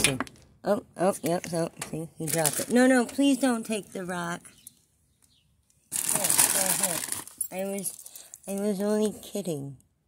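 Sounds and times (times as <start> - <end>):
loud close rustling: 5.9 - 8.3.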